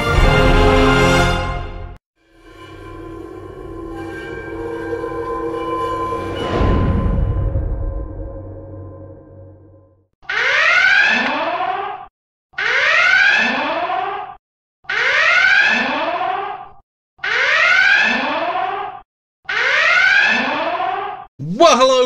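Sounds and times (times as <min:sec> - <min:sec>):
ringing tone: 0:02.3 - 0:09.9
whooping warning alarm: 0:02.4 - 0:07.8.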